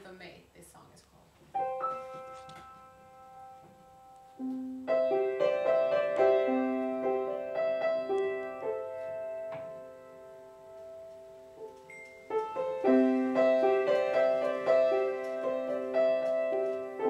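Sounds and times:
upright piano playing: 0:01.5 - 0:17.0.

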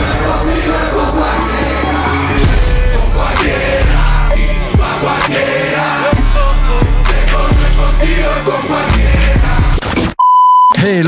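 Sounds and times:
hip-hop music with rapping: 0:00.0 - 0:10.1
electronic bleep: 0:10.2 - 0:10.8.

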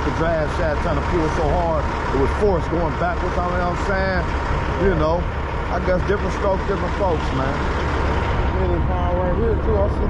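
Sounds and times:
man talking: 0:00.0 - 0:07.8, 0:08.4 - 0:10.0
steady low rumble: 0:00.0 - 0:10.0.

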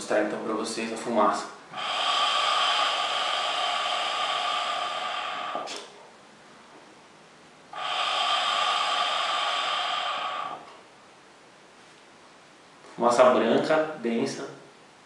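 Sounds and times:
air drawn through hookah: 0:01.6 - 0:06.3, 0:07.7 - 0:11.0.

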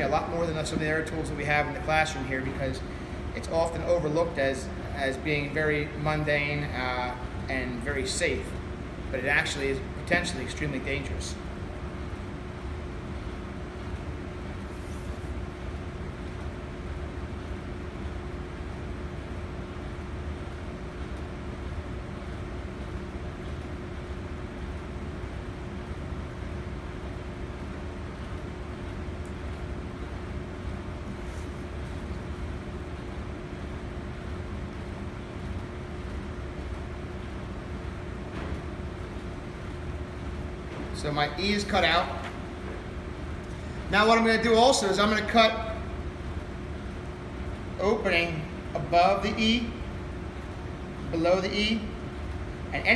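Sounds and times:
ventilation hum and hiss: 0:00.0 - 0:52.9.

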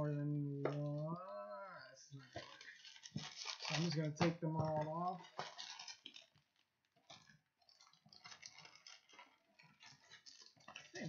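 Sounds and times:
card packs stacked on a table: 0:02.2 - 0:11.0
foil packs crinkling: 0:02.2 - 0:11.0.

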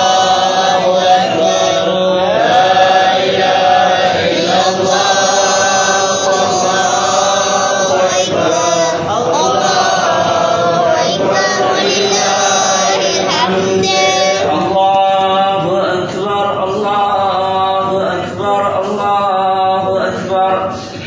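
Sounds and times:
group chanting in unison: 0:00.0 - 0:21.0.

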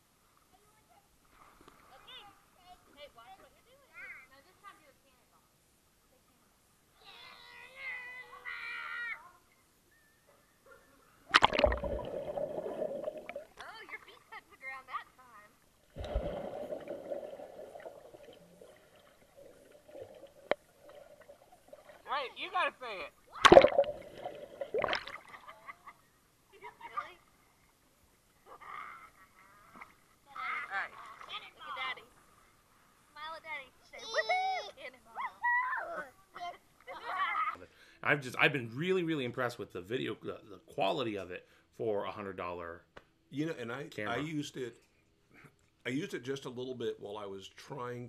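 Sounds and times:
loud splash into pool: 0:11.3 - 0:13.4, 0:16.0 - 0:18.0, 0:23.4 - 0:25.3
churning water and bubbles: 0:11.3 - 0:13.6, 0:15.9 - 0:22.0, 0:23.3 - 0:25.3
toddler high-pitched vocal sound: 0:34.0 - 0:36.5.

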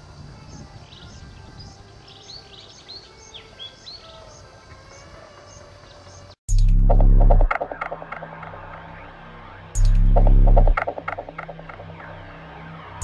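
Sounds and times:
small birds chirping: 0:00.0 - 0:06.4.

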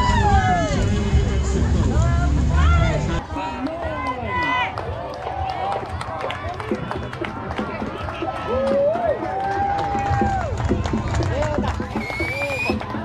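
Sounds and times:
spectators calling and cheering: 0:00.0 - 0:13.0.

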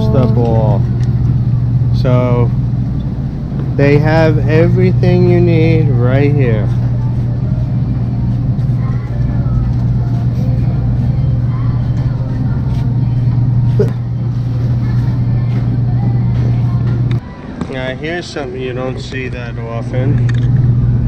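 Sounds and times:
busy store noise: 0:00.0 - 0:21.0
freezer cases humming: 0:00.0 - 0:21.0.

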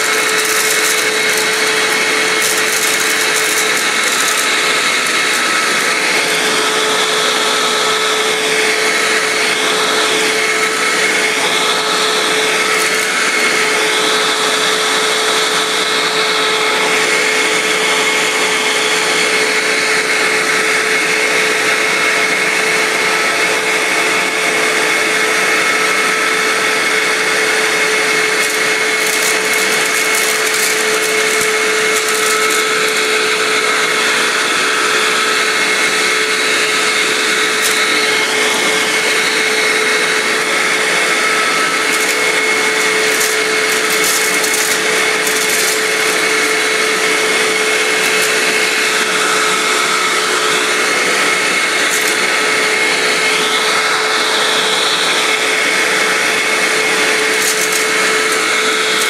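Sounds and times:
popcorn rattling into vacuum: 0:00.0 - 0:16.4, 0:25.9 - 0:34.3, 0:35.9 - 0:49.5, 0:51.2 - 0:53.9, 0:56.6 - 0:59.0
vacuum cleaner running: 0:00.0 - 0:59.0.

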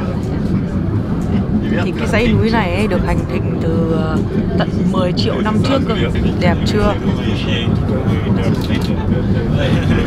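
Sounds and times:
funicular car rumbling: 0:00.0 - 0:10.0.

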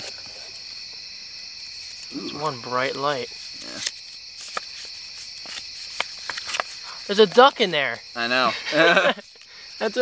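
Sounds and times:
night insects chirping: 0:00.0 - 0:10.0.

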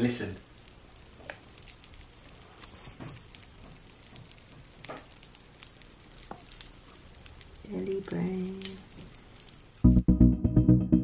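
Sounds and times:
popping candy crackling: 0:00.0 - 0:09.9.

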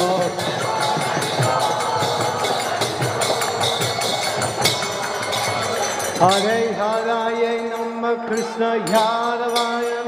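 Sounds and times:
drum rhythm: 0:00.0 - 0:07.5
hand cymbals: 0:00.0 - 0:10.0.

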